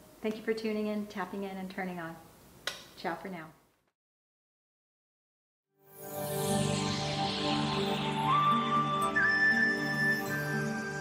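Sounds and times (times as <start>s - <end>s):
background music: 5.8s - 11.0s.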